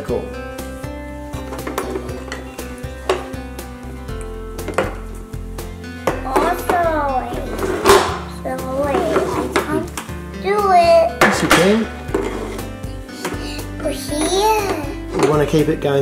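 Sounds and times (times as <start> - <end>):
background music: 0.0 - 16.0
child's wordless voice: 6.2 - 11.2, 13.5 - 15.0.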